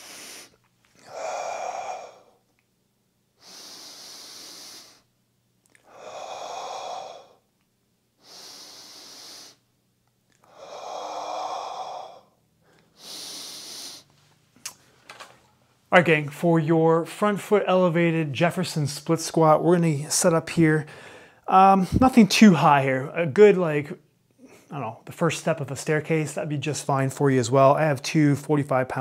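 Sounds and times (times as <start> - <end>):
man breathing deeply: 0.0 - 2.6, 3.4 - 5.1, 5.8 - 7.5, 8.2 - 9.7, 10.4 - 14.2, 20.9 - 22.0.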